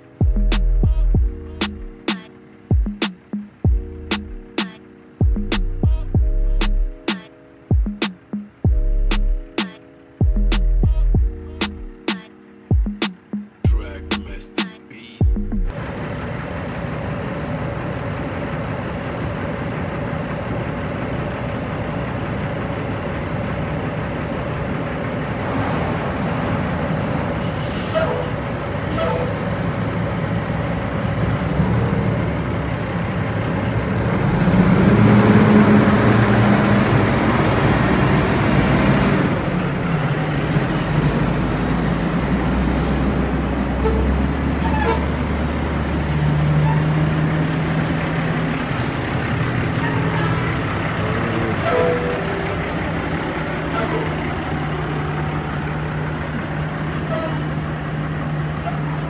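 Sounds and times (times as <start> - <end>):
diesel truck engine revving: 15.4 - 59.0
high engine whistle: 27.4 - 29.6, 43.6 - 45.5, 46.5 - 47.2, 49.7 - 52.9.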